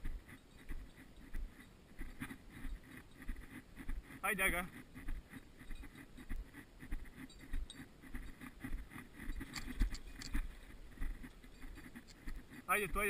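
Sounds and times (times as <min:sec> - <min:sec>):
clothing and gear rustling: 0:00.0 - 0:12.7
footsteps on asphalt: 0:00.0 - 0:12.7.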